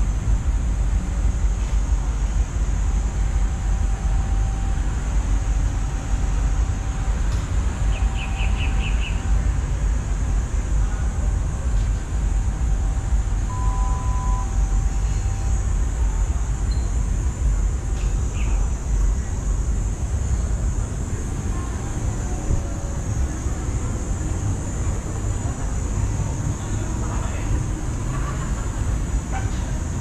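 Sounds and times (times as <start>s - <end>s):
faint high hiss: 0.0s - 29.8s
distant traffic rumble: 0.0s - 30.0s
short tone: 13.5s - 15.3s.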